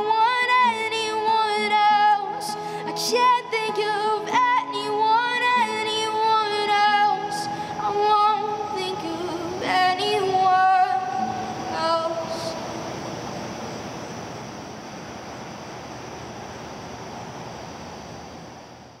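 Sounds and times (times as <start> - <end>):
woman singing: 0.0 - 12.7
acoustic guitar: 0.0 - 15.2.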